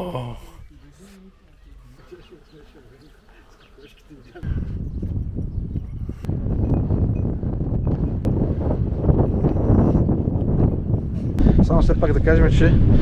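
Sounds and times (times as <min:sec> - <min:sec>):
wind rumbling on microphone: 0:04.4 - 0:13.0.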